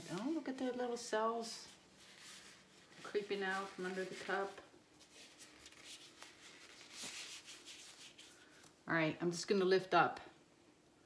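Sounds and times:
rubbing and rustling: 0:00.0 - 0:08.8.

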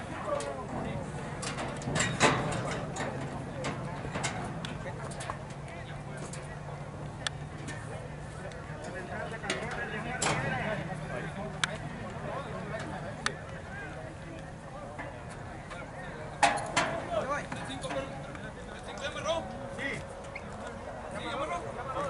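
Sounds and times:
people talking in background: 0:00.0 - 0:22.0
steady low hum: 0:00.0 - 0:22.0
metal starting gate clanking: 0:01.3 - 0:05.6.

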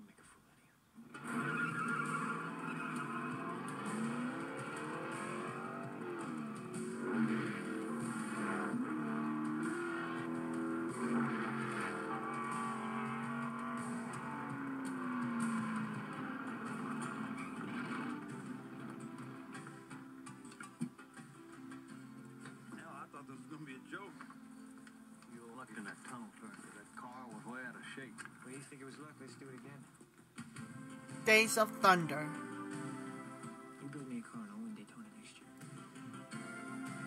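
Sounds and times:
stock car engines racing past: 0:01.2 - 0:20.0
film score music: 0:01.2 - 0:23.2, 0:30.4 - 0:34.2.

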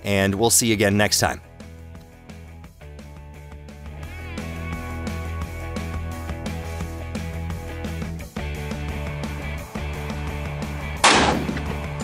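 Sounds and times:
background music: 0:00.0 - 0:12.0
gunshot crack: 0:11.0 - 0:11.7.

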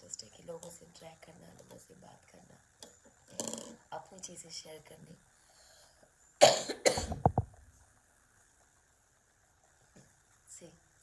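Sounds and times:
woman coughing: 0:06.4 - 0:07.2.

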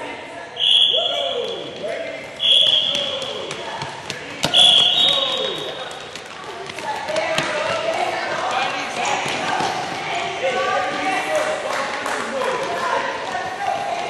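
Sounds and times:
overlapping voices talking: 0:01.0 - 0:14.0
basketballs bouncing: 0:01.4 - 0:11.1, 0:12.5 - 0:14.0.

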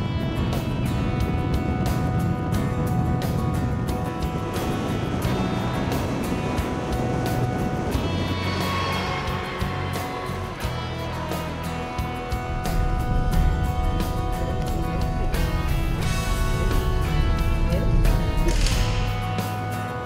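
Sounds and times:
music with steady beat: 0:00.0 - 0:20.0.

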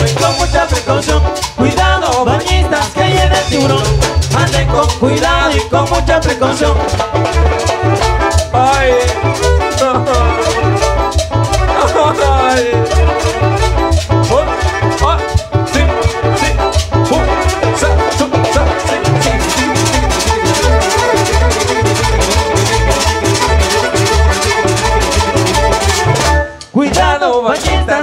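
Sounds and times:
live band playing cumbia: 0:00.0 - 0:28.0.

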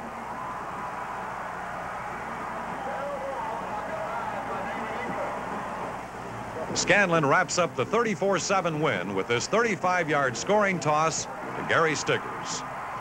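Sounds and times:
stadium crowd noise: 0:00.0 - 0:13.0.

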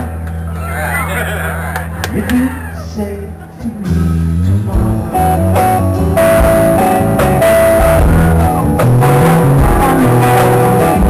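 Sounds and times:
bass guitar notes: 0:00.0 - 0:11.0
sustained electric guitar notes: 0:01.6 - 0:11.0.

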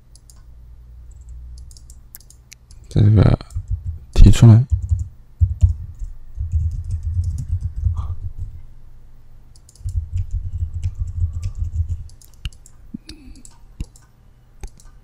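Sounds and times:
typing on computer keyboard: 0:01.1 - 0:02.4, 0:04.7 - 0:08.6, 0:09.5 - 0:12.8.

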